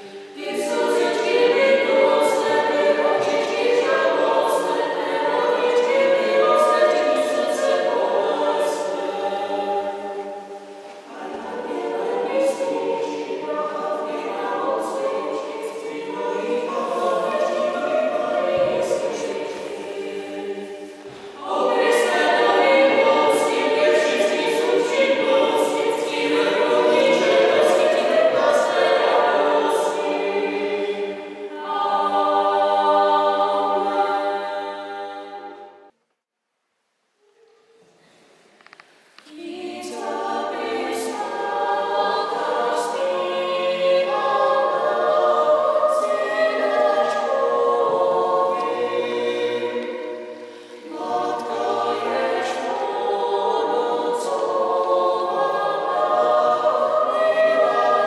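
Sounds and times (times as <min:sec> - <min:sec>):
choir singing: 0:00.0 - 0:36.0, 0:39.2 - 0:58.0.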